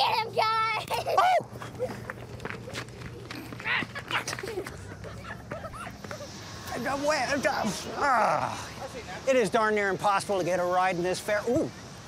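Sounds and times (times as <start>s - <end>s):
children's voices: 0.0s - 1.4s.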